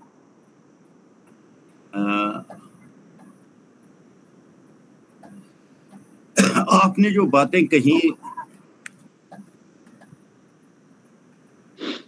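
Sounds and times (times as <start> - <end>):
faint microphone hiss: 0.0 - 12.0
man speaking over call: 2.0 - 2.5, 6.4 - 8.4
man clearing throat: 6.4 - 6.9, 8.2 - 8.5.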